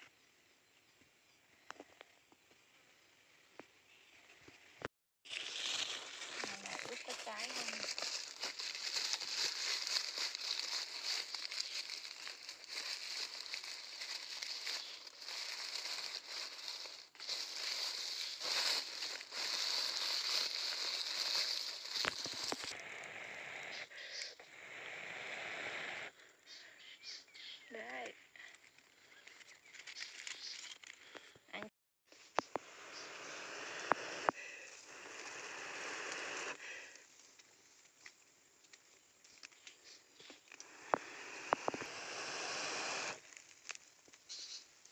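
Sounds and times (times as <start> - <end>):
dry leaves crinkling: 5.3 - 22.8, 28.7 - 31.2, 43.2 - 44.6.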